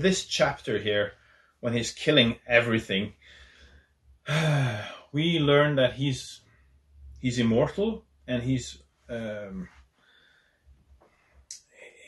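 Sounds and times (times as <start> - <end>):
drawn-out voiced sigh: 4.3 - 5.0.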